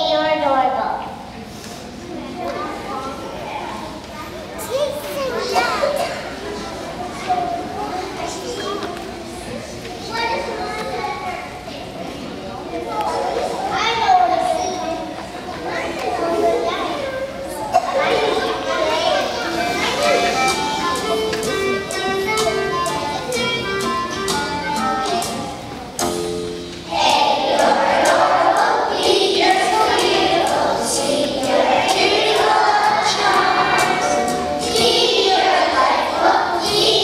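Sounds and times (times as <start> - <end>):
children chattering and calling out: 0.0 - 37.0.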